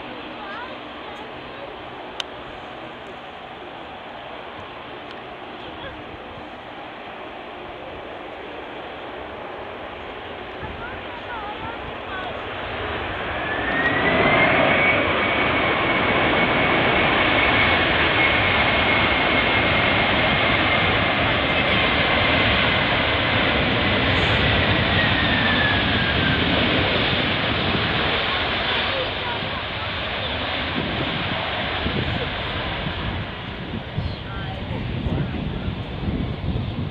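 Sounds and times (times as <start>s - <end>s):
jet engines at high power: 0.0s - 36.9s.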